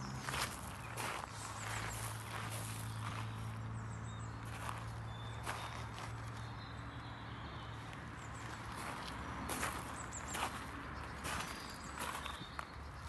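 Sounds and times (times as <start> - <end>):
footsteps on gravel: 0.0 - 3.7, 4.3 - 6.6, 7.8 - 13.0.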